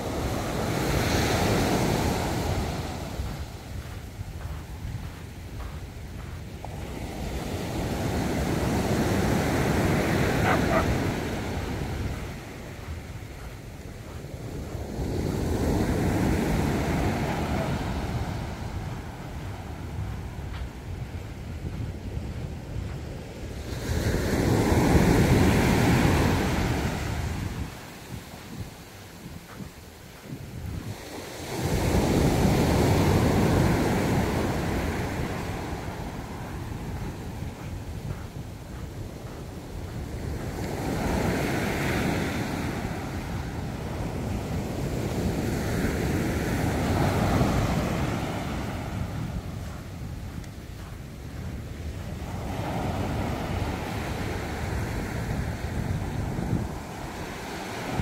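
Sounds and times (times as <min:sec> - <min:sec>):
ocean waves breaking on beach: 0:00.0 - 0:58.0.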